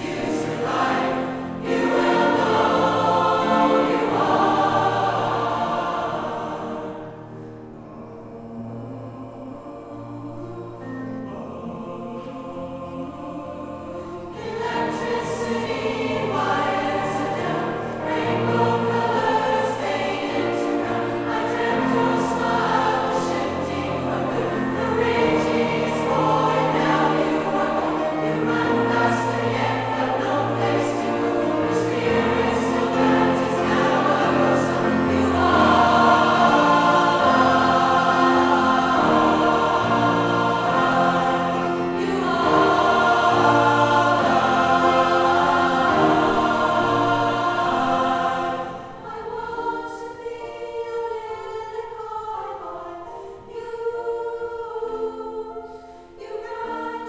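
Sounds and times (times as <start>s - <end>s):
mixed choir singing a pop song: 0.0s - 57.0s.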